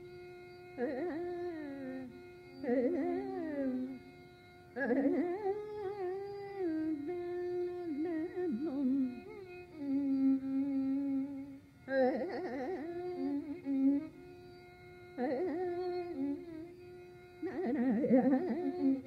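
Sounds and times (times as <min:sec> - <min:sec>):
tambura drone: 0:00.0 - 0:19.0.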